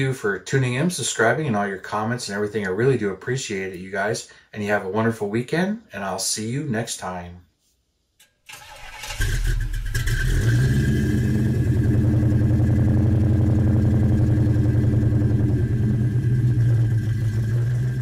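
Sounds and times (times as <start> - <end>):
car engine cranking and idling: 8.5 - 18.0.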